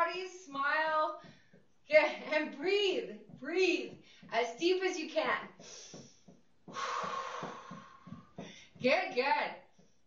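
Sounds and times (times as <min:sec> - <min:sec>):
feet marching on floor: 0:00.7 - 0:10.0.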